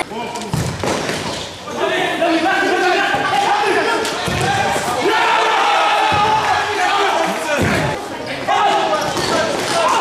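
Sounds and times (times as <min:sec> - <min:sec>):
players calling out echoing: 0:00.0 - 0:10.0.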